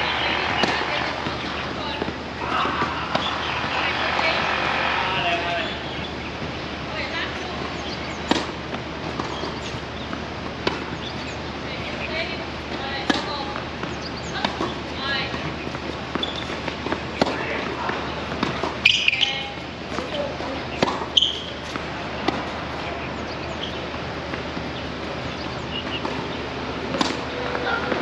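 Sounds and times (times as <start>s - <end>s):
rackets striking tennis ball: 0.0s - 28.0s.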